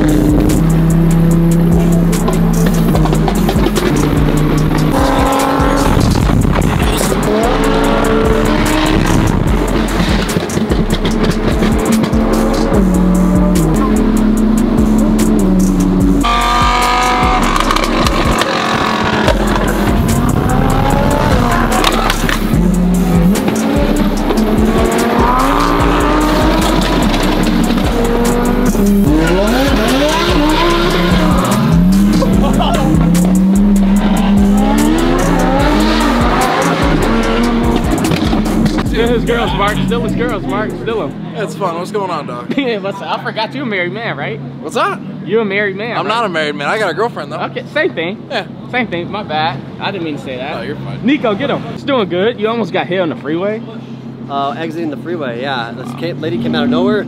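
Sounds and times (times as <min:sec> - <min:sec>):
background music: 0:00.0 - 0:42.0
sports car engines revving: 0:00.0 - 0:57.0.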